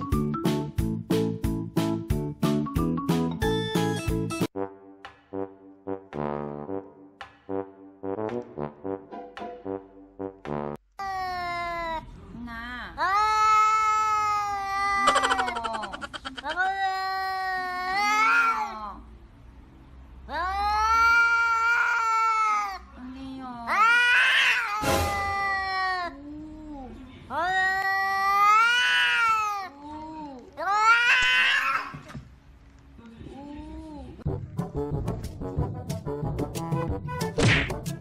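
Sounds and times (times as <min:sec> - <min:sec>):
cat meowing: 0:30.6 - 0:32.0.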